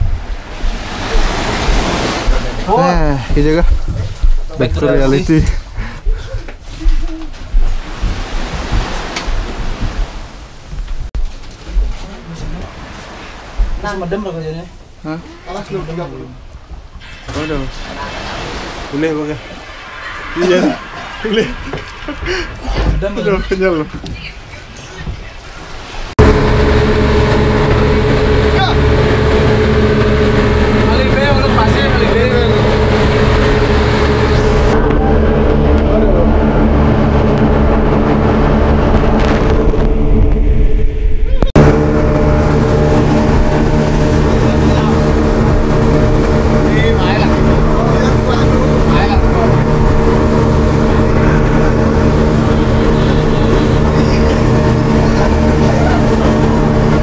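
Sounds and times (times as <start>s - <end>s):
boat engine drone: 0.0s - 10.8s, 25.8s - 57.0s
wind noise: 0.0s - 12.0s, 32.5s - 57.0s
rushing water: 0.0s - 39.9s, 41.5s - 57.0s.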